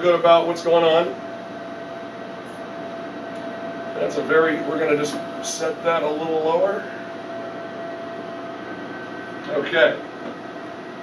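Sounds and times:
machine hum with faint whine: 0.0 - 11.0.

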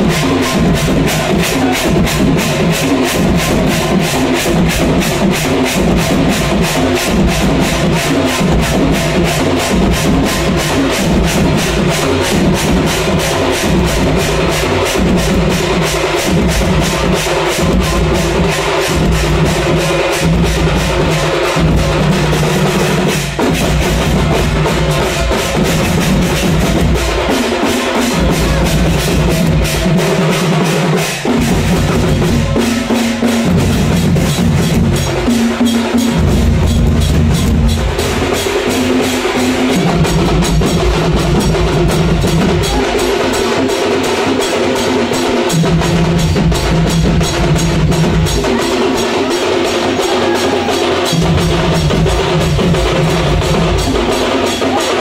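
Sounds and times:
percussion band drumming: 0.0 - 55.0.

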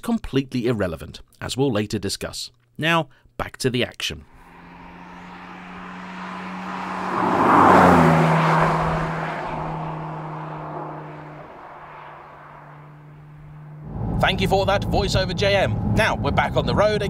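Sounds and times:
sports car driving past: 4.3 - 17.0.

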